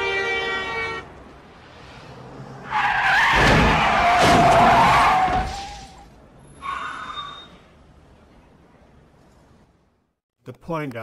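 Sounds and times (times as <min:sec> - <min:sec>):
car tyres screeching: 0:01.6 - 0:07.9.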